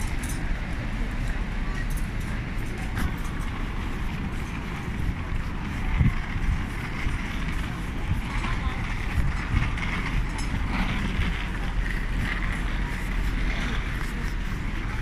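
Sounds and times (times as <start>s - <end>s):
indistinct voices of passers-by: 0.0s - 15.0s
low rumble of traffic: 0.0s - 15.0s
wind on microphone: 0.0s - 15.0s.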